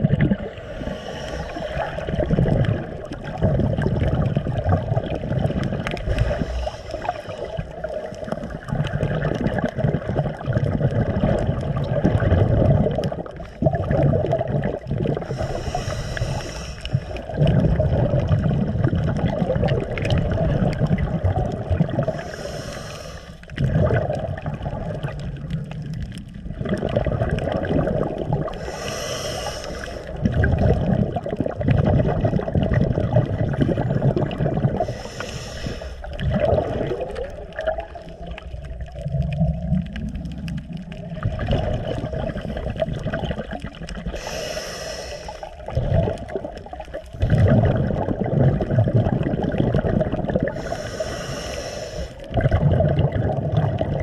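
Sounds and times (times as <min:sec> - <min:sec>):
exhaled air bubbling: 0:00.0 - 0:54.0
regulator inhale hiss: 0:00.5 - 0:02.0, 0:06.1 - 0:08.4, 0:15.2 - 0:17.2, 0:22.0 - 0:23.5, 0:28.5 - 0:30.2, 0:34.8 - 0:36.2, 0:44.0 - 0:45.6, 0:50.5 - 0:52.3.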